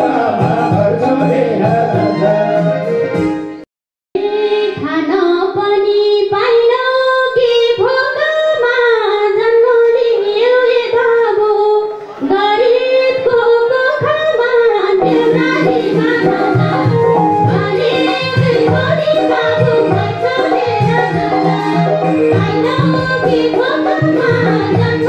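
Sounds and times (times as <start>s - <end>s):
woman singing into a microphone: 4.2s - 25.0s.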